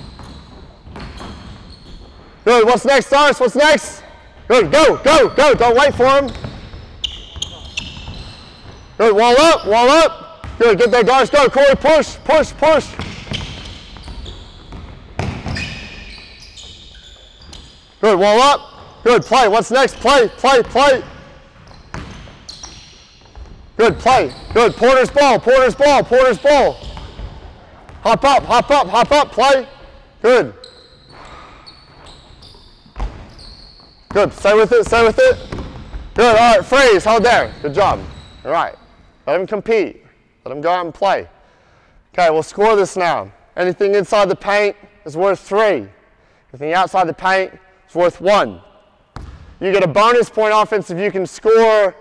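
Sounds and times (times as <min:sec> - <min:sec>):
basketball bouncing: 0:00.0 - 0:02.3, 0:05.5 - 0:08.9, 0:12.8 - 0:16.8, 0:20.6 - 0:24.9, 0:26.6 - 0:29.2, 0:31.0 - 0:33.4, 0:34.1 - 0:36.4, 0:49.1 - 0:49.6
shoes squeaking on hardwood court: 0:00.0 - 0:02.8, 0:04.2 - 0:39.3, 0:48.6 - 0:49.6.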